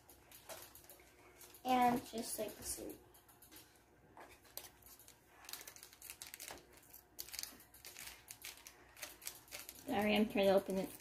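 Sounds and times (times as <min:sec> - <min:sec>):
plastic bag crinkling: 0:04.4 - 0:11.0.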